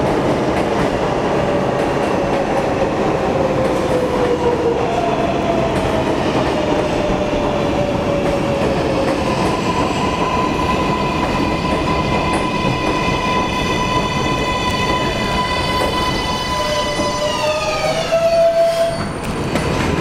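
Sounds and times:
subway train rumbling: 0.0s - 20.0s
train brakes squealing: 10.8s - 19.4s.

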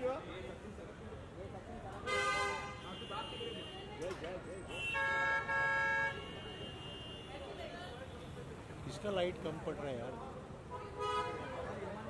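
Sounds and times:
background chatter: 0.0s - 12.0s
vehicle horns honking: 4.7s - 7.5s, 10.7s - 11.6s.

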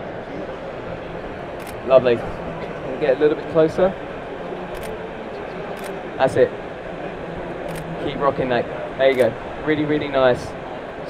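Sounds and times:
exhibition hall hum: 0.0s - 11.0s.

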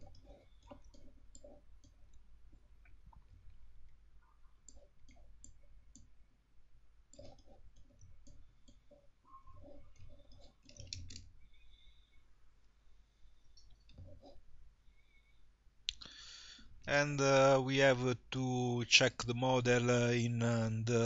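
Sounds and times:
computer mouse clicking: 0.0s - 2.2s, 4.6s - 6.1s, 7.1s - 11.3s
faint low hum: 0.0s - 21.0s.

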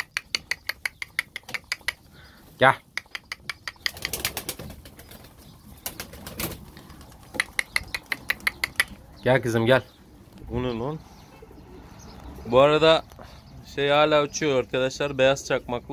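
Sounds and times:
pigeons tapping: 0.0s - 10.6s
wings flapping: 3.0s - 9.0s.

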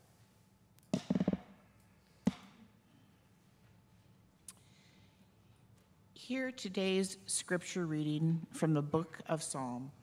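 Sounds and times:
low thumps: 1.0s - 1.5s
sharp knock: 1.0s - 1.5s, 2.3s - 2.5s.

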